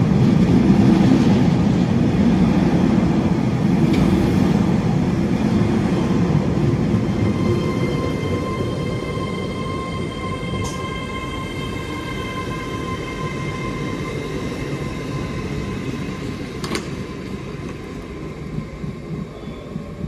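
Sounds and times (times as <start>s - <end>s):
train wheels rumbling on track: 0.0s - 20.0s
train whine: 0.0s - 20.0s.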